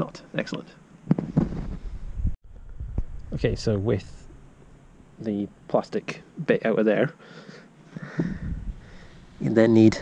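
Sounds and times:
wind buffeting microphone: 1.4s - 4.1s, 8.2s - 9.0s.

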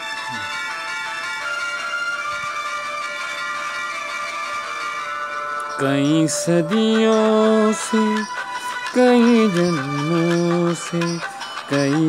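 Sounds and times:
instrumental film song backing: 0.0s - 12.0s.

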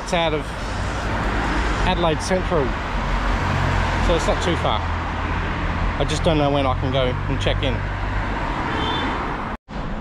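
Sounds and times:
city road traffic: 0.0s - 10.0s.

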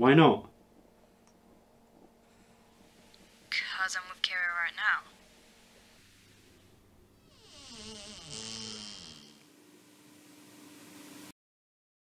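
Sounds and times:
high buzzing whine: 1.9s - 11.3s.

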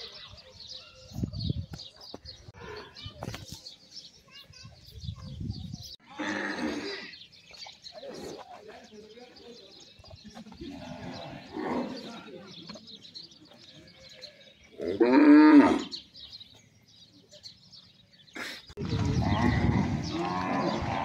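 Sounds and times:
people's voices: 0.0s - 21.0s
cows lowing: 18.4s - 21.0s.

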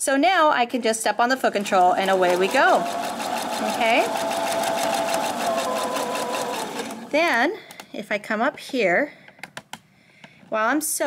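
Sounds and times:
sewing machine running: 1.3s - 7.4s.

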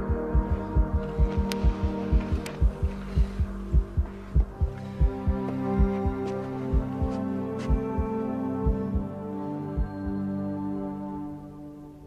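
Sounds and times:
low heartbeat: 0.0s - 10.3s
droning chord: 0.0s - 12.0s.

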